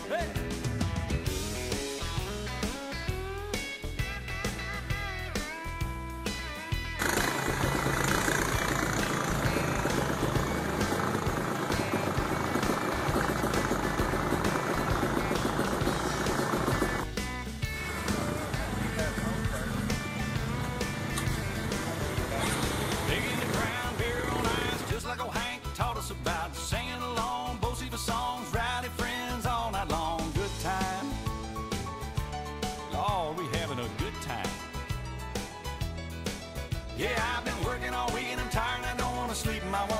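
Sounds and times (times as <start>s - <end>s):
music playing: 0.0s - 39.9s
atv engines running: 6.9s - 31.9s
people's voices: 17.8s - 25.5s.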